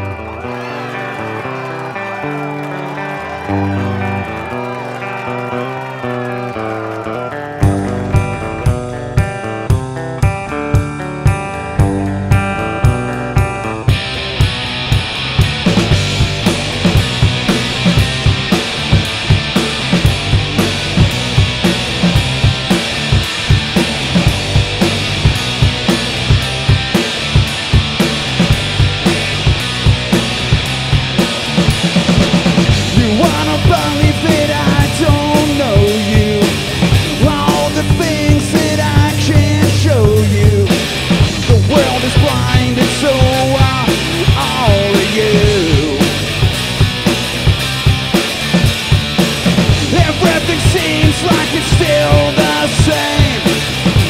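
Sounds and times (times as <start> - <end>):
electric guitar riff: 0.0 - 54.0
rock band playing: 0.0 - 54.0.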